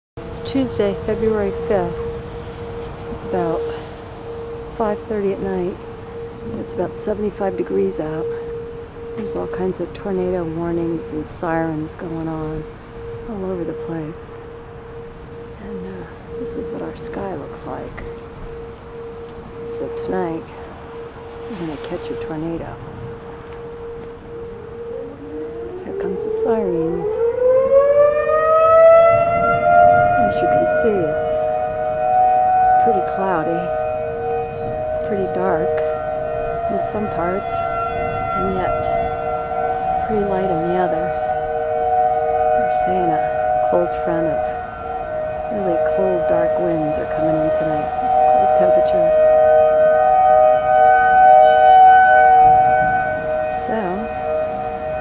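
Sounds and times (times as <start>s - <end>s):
low steady siren tone: 0.2s - 55.0s
siren winding up: 22.2s - 55.0s.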